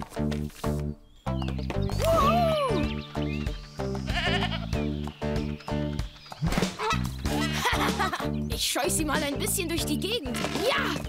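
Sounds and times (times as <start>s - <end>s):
background music: 0.0s - 11.0s
cartoon goat bleating: 4.1s - 4.7s.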